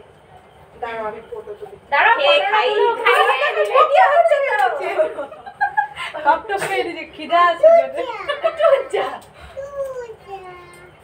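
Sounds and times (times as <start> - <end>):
people talking: 0.8 - 11.0.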